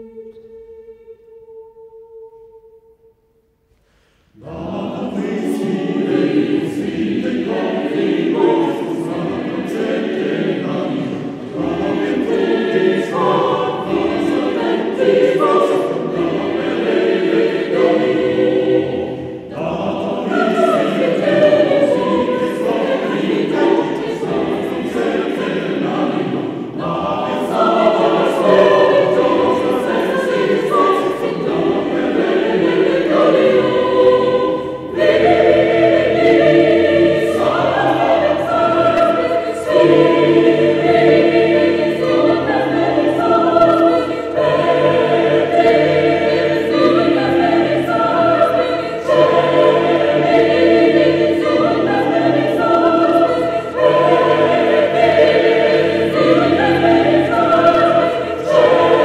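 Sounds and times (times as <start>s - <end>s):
choir singing held chords: 0.0s - 59.0s.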